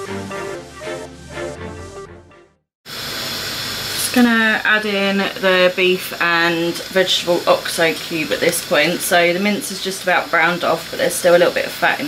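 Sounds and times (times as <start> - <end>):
background music: 0.0 - 2.6
meat sizzling in a frying pan: 2.9 - 12.0.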